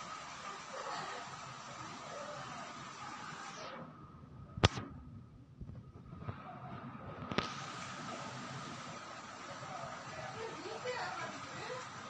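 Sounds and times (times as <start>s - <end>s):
single sharp click: 4.6s - 4.9s.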